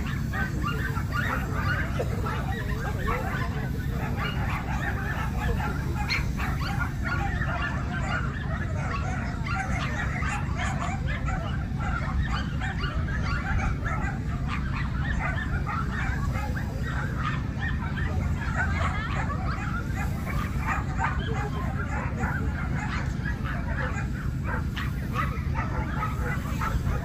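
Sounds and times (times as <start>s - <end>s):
many dogs barking: 0.0s - 27.0s.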